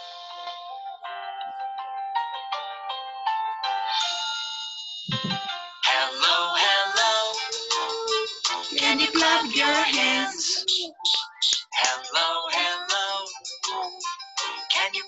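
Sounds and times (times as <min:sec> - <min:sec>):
person singing: 0:05.1 - 0:15.0.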